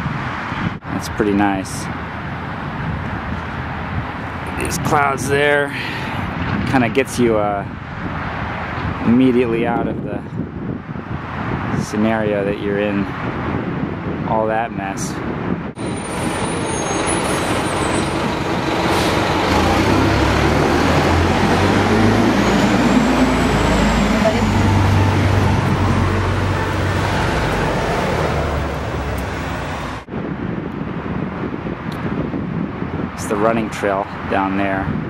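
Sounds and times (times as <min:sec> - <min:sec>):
dense city traffic noise: 0:00.0 - 0:35.0
heavy vehicles rumbling: 0:00.0 - 0:35.0
wind noise: 0:00.0 - 0:35.0.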